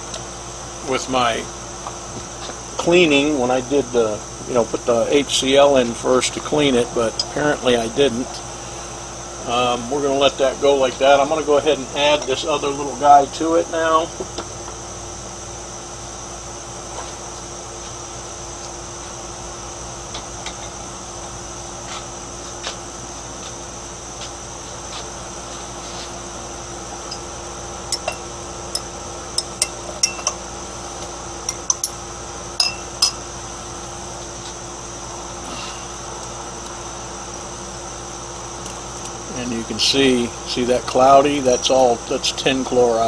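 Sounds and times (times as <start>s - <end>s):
faint high whine: 0.0s - 43.0s
steady low hum: 0.0s - 43.0s
glass labware clinking: 27.9s - 28.3s, 29.4s - 30.4s, 31.5s - 32.0s, 32.6s - 33.2s.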